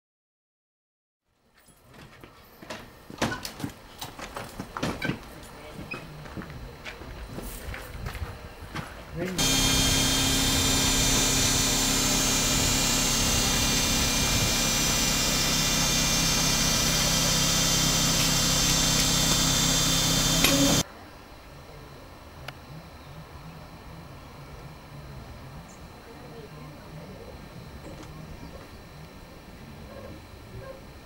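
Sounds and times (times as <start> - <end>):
electric railcar hum with high whine: 1.6 - 31.0.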